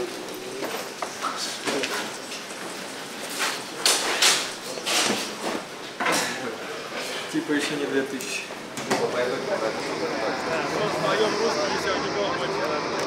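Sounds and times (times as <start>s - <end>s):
voices talking: 6.4s - 13.0s.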